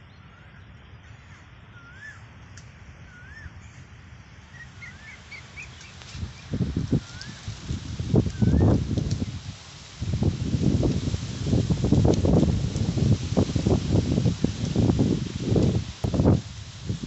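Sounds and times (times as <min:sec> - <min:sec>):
bird chirps: 0:00.0 - 0:02.3, 0:04.5 - 0:06.5
bird whistling call: 0:00.0 - 0:02.3, 0:03.1 - 0:03.8, 0:04.5 - 0:07.4.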